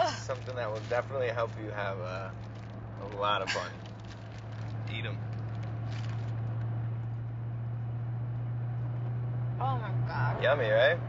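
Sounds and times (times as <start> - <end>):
car cabin hum while driving: 0.0 - 11.0.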